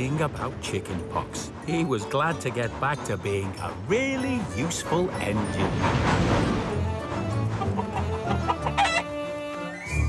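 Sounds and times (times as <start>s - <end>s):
background music sustained notes: 0.0s - 10.0s
hen clucking and squawking: 7.3s - 9.9s.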